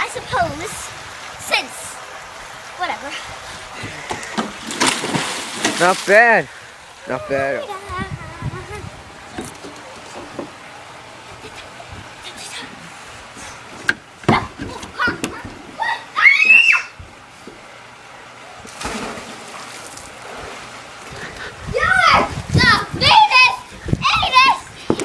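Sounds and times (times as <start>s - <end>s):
rush of water: 0.0s - 25.0s
children calling: 14.2s - 17.0s
child shouting: 14.3s - 17.0s, 21.7s - 24.7s.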